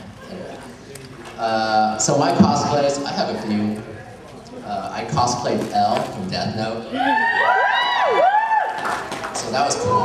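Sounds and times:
audience squealing and whooping: 6.8 - 10.0.

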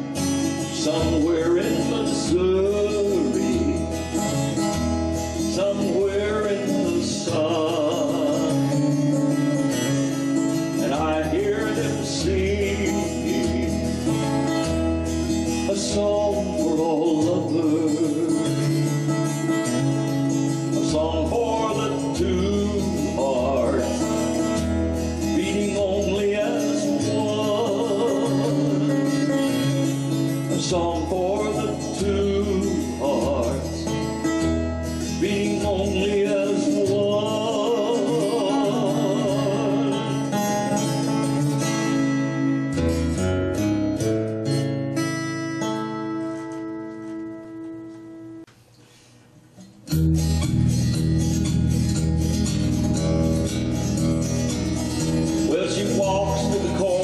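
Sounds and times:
acoustic guitar strummed: 0.0 - 57.0.

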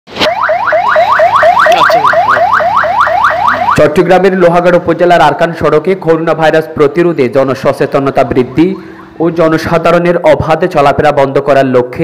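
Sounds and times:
electronic siren yelping: 0.1 - 4.4, 8.2 - 9.8
man speaking: 1.7 - 2.5, 3.8 - 12.0.

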